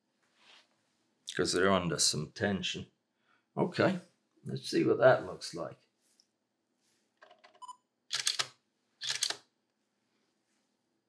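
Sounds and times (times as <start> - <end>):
camera beep: 7.6 - 8.4
camera shutter clacks: 8.1 - 9.4
faint camera clicks: 8.1 - 9.5.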